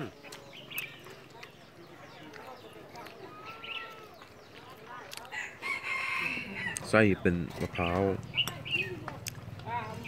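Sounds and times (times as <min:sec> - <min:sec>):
rooster crowing: 0:05.4 - 0:06.8.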